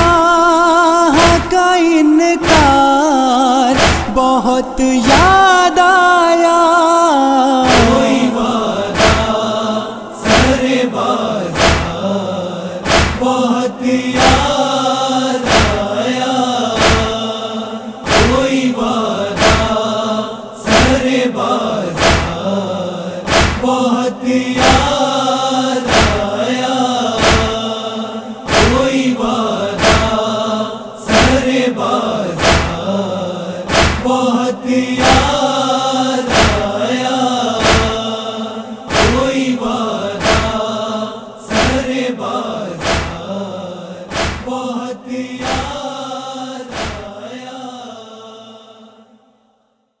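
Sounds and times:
chorus of voices chanting: 0.0 - 49.6
deep rhythmic thump: 2.4 - 2.9, 3.8 - 4.3, 7.6 - 10.8, 11.5 - 12.1, 12.8 - 13.4, 15.5 - 15.9, 16.7 - 17.2, 18.1 - 18.6, 19.2 - 19.8, 21.9 - 22.6, 23.2 - 23.8, 25.9 - 26.4, 27.2 - 27.7, 28.5 - 30.2, 32.3 - 33.0, 33.6 - 34.2, 36.3 - 36.8, 37.5 - 38.1, 38.9 - 39.5, 40.1 - 40.8, 42.8 - 43.4, 44.1 - 44.6, 46.7 - 47.2
heavy chest-beating thumps: 23.3 - 23.7, 44.1 - 44.5.

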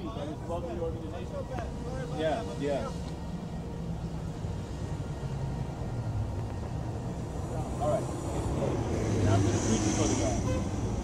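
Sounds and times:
distant voices: 0.0 - 11.0
vehicle engines humming: 0.0 - 11.0.

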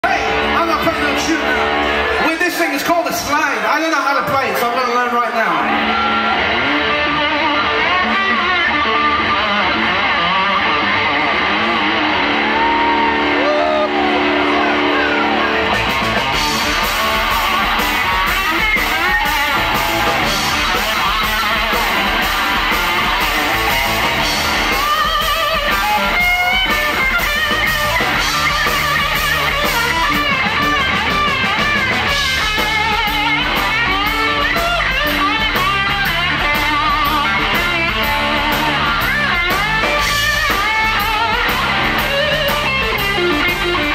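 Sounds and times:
bass guitar: 0.0 - 43.9
slide electric guitar: 0.0 - 43.9
drums and cymbals: 12.4 - 43.9.

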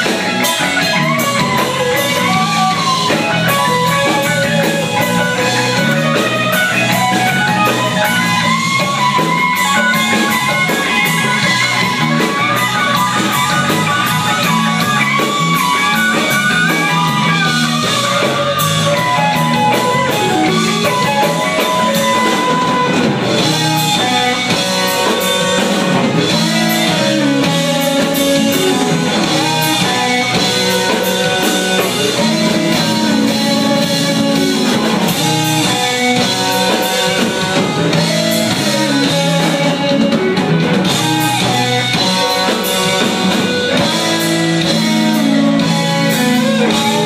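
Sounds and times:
drums: 0.0 - 47.0
electric guitar lead lines: 0.0 - 47.0
rhythm electric guitar: 0.0 - 47.0.

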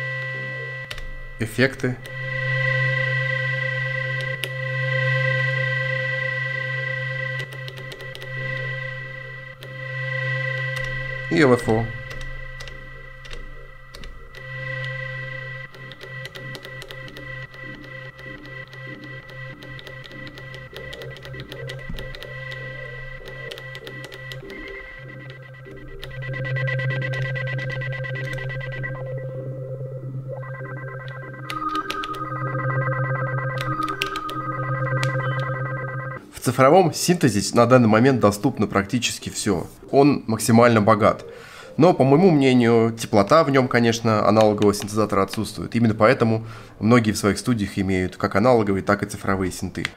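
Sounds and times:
synthesizer electronic tone: 0.0 - 36.8, 37.4 - 46.4.

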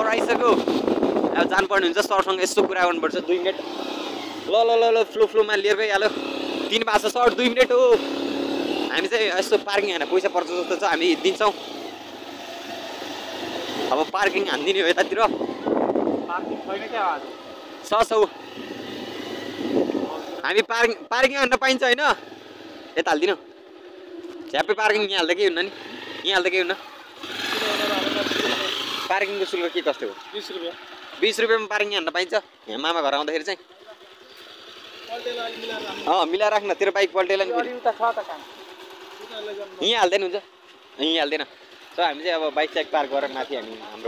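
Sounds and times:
motorcycle engine hum: 0.0 - 44.0
road noise: 0.0 - 44.0.

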